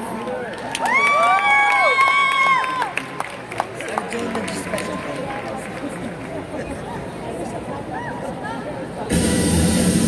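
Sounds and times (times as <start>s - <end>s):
audience voices talking: 2.3s - 9.8s.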